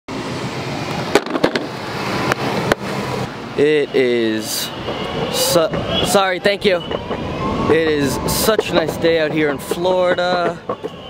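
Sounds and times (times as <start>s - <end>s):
skateboard wheels rumbling on asphalt: 0.8s - 3.3s, 4.6s - 11.0s
skateboard clacking over cracks: 1.1s - 1.7s.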